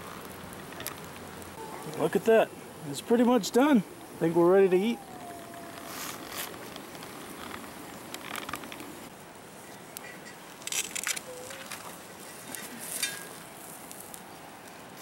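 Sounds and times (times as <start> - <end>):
wood fire crackling: 0.0 - 15.0
metal tongs scraping and clicking: 12.5 - 13.3.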